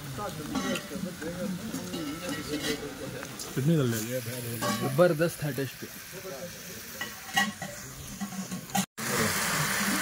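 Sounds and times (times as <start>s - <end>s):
food frying sizzle: 0.0s - 10.0s.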